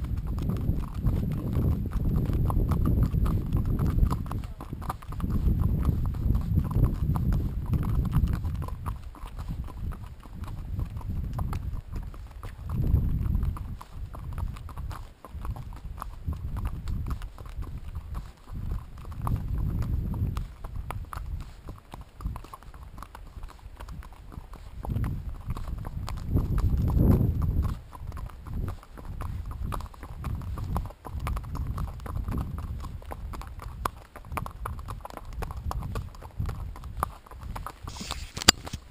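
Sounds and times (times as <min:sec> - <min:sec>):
horse hooves on gravel: 0:00.0 - 0:38.9.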